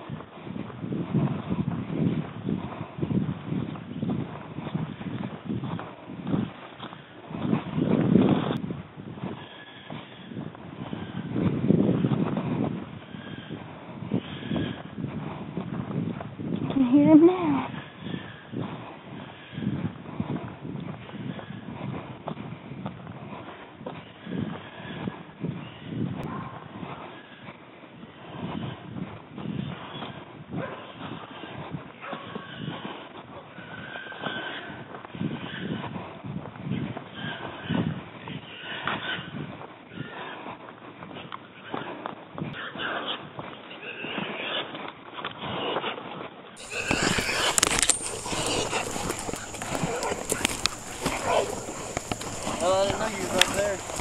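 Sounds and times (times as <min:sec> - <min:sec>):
dogs barking and baying: 0:30.6 - 0:31.0, 0:32.0 - 0:32.5, 0:46.6 - 0:54.0
person moving through undergrowth: 0:46.6 - 0:54.0.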